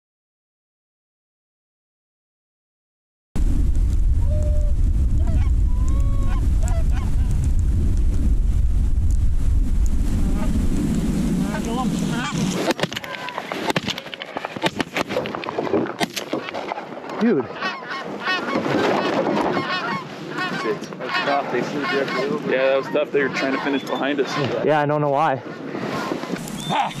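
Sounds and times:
wind rumbling on microphone: 3.4 - 27.0
geese honking: 4.3 - 7.3, 11.6 - 14.6, 16.3 - 24.6, 25.9 - 27.0.

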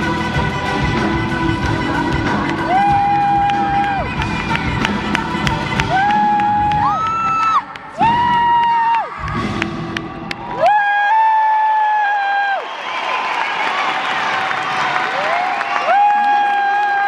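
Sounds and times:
band with drums: 0.0 - 7.2
woman singing: 0.0 - 8.2
crowd cheering and whooping: 2.3 - 17.0.

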